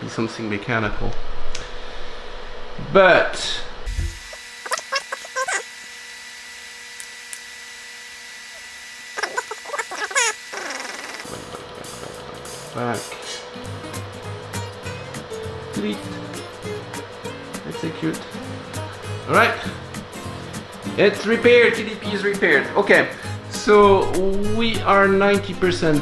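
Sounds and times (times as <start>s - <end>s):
background music with steady beat: 11.3s - 26.0s.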